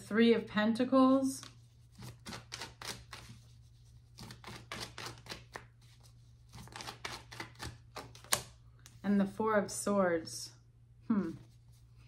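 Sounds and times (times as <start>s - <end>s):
cards shuffling: 1.4s - 3.5s, 4.1s - 9.0s.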